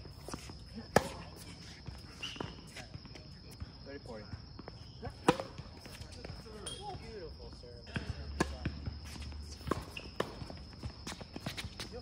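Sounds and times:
racket hitting ball: 0.9s - 1.4s, 5.2s - 5.6s
ball bouncing on hard court: 7.9s - 12.0s.

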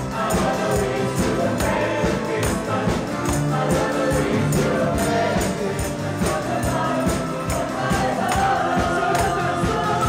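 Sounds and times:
amplified band: 0.0s - 10.0s
group singing gospel: 0.0s - 10.0s
tambourines shaken: 0.0s - 10.0s.

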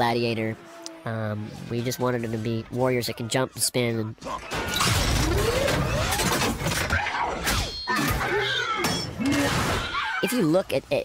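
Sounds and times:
metallic crashes and shattering: 4.5s - 7.0s.

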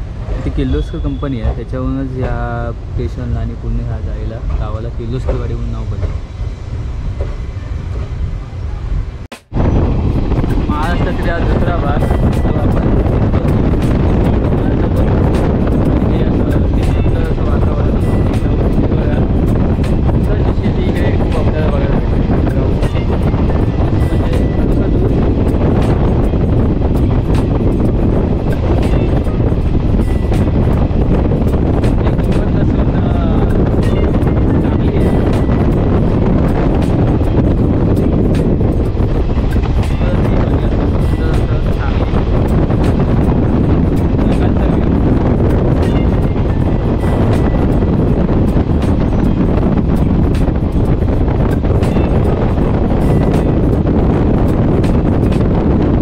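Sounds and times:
train rumbling on track: 0.0s - 56.0s
wind on microphone: 0.0s - 56.0s.

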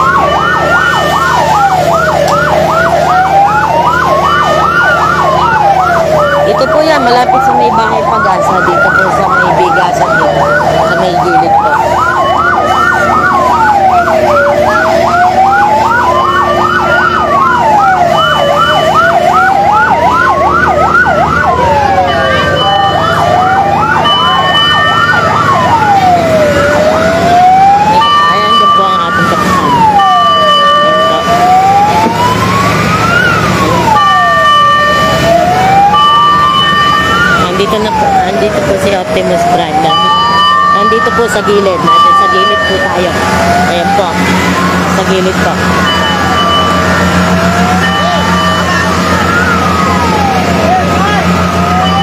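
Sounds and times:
siren fast yelp: 0.0s - 52.0s
siren slow wail: 0.0s - 52.0s
steady siren tones: 0.0s - 52.0s.

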